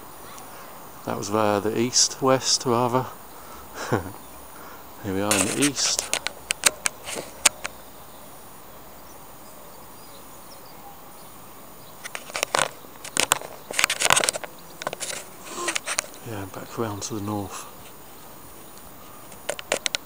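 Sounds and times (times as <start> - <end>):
faint hiss: 0.0 - 20.0.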